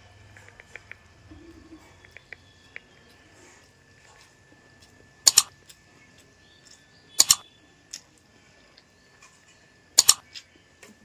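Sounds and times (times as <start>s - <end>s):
faint high whine: 0.0s - 11.0s
mouse clicks: 5.3s - 5.5s, 7.2s - 7.4s, 10.0s - 10.2s.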